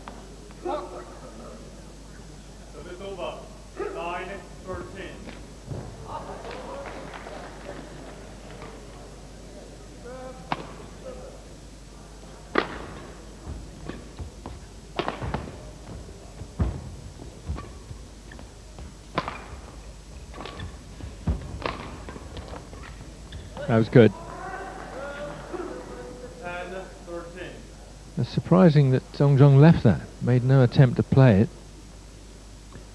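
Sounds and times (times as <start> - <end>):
murmur in indoor hall: 0.0 - 32.9
racket hitting shuttlecock: 10.5 - 10.9, 12.5 - 23.7.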